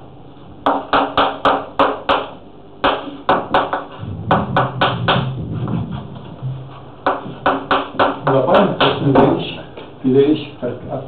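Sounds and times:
chalk tapping on blackboard: 0.6s - 4.0s, 7.0s - 9.3s.

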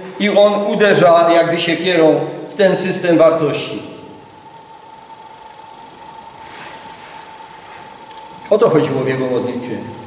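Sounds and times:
faint hiss: 0.0s - 10.0s
steady high-pitched whine: 0.0s - 10.0s.

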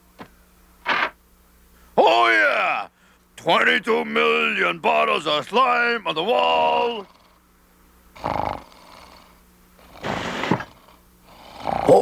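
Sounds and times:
cartoon character snoring: 6.4s - 7.4s, 8.2s - 12.0s.

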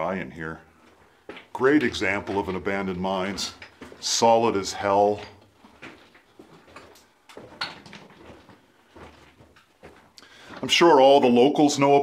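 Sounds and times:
footsteps on leaves and stone: 0.9s - 11.4s.

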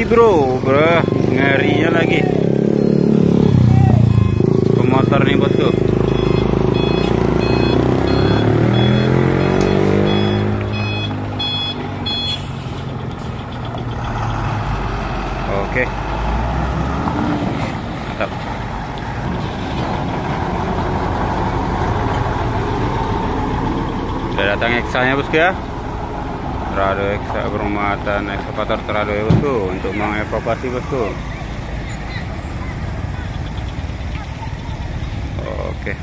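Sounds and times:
heavy trucks driving past: 0.0s - 36.0s
reversing alarm beeping: 0.6s - 12.6s.

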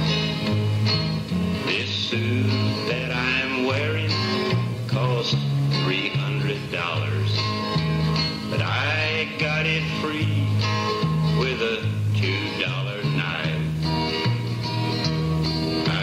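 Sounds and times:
country guitar lead: 0.0s - 16.0s.

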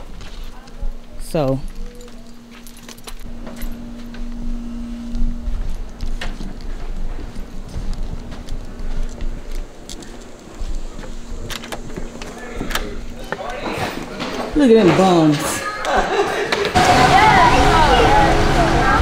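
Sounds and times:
low rumble: 0.0s - 13.3s
handling noise: 0.0s - 15.7s
footsteps: 0.0s - 16.9s
steady hum: 0.0s - 19.0s.

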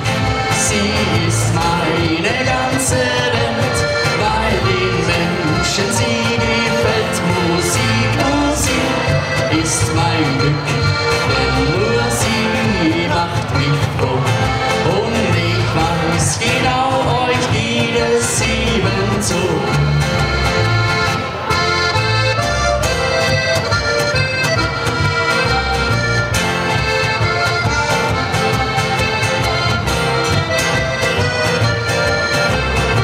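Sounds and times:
button accordion playing folk tune: 0.0s - 33.0s
strummed acoustic guitar: 0.0s - 33.0s.

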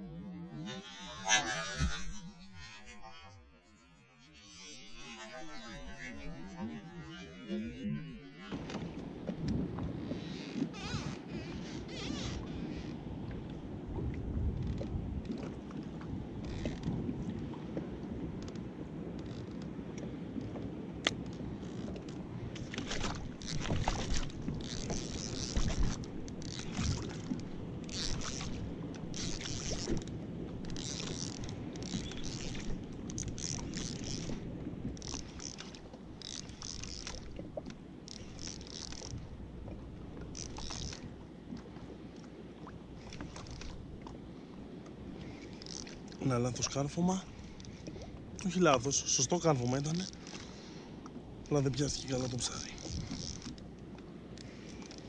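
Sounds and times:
wind on microphone: 0.0s - 3.4s, 5.0s - 41.2s
water noise: 0.0s - 55.0s.

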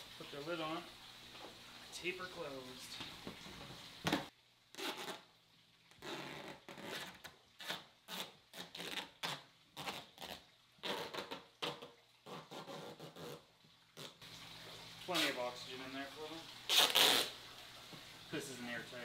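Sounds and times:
duct tape ripping off roll: 4.1s - 5.3s, 6.0s - 13.4s, 16.7s - 17.4s.

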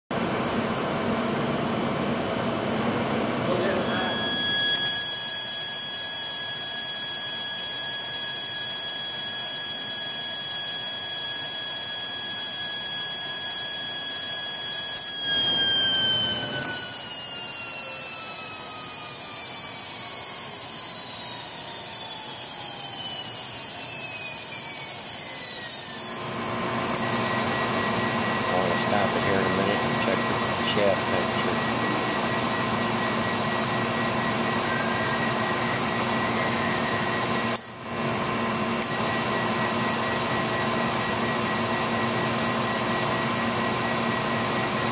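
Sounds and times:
spindle high-pitched whine: 0.2s - 44.9s
click: 4.7s - 5.0s, 14.9s - 15.1s, 26.9s - 27.1s, 37.5s - 37.7s.

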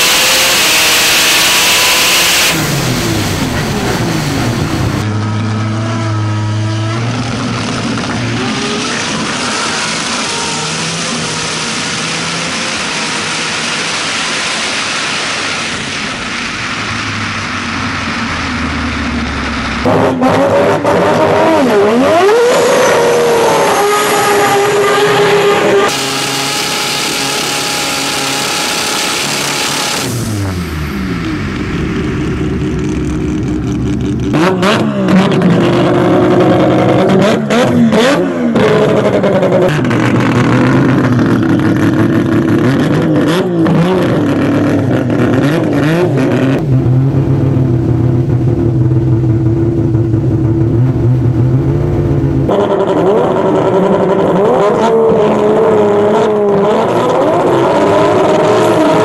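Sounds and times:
rotary engine revving: 0.0s - 59.0s.

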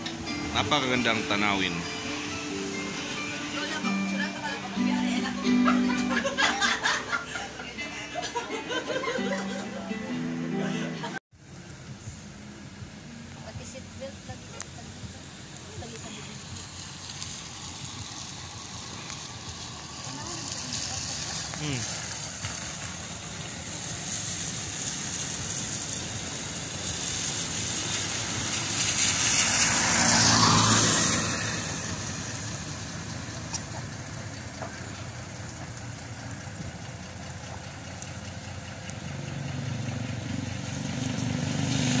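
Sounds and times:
truck passing on wet road: 0.0s - 42.0s
vehicle engine: 0.0s - 42.0s.

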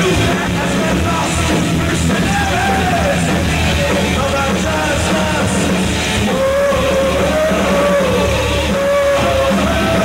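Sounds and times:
metal band playing: 0.0s - 10.0s
pitch-bending melodic guitar line: 0.0s - 10.0s.

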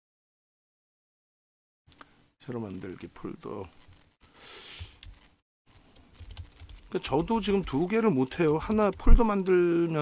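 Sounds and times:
typing on computer keyboard: 4.8s - 9.4s.

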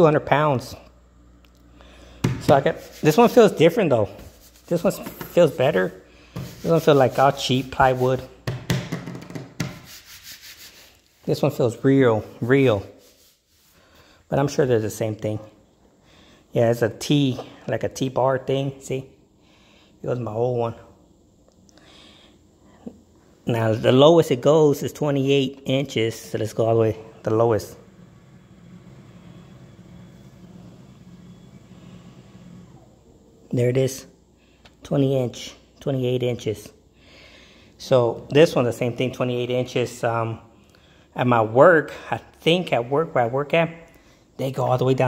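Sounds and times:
hand rubbing on wooden desk: 2.5s - 8.4s, 9.6s - 11.5s, 12.2s - 13.8s
standing desk motor running: 27.4s - 33.0s.

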